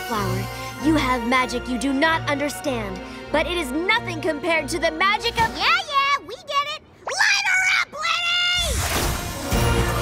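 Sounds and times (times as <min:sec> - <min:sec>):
orchestral film score: 0:00.0 - 0:06.1, 0:08.6 - 0:10.0
girl shouting: 0:05.1 - 0:08.7.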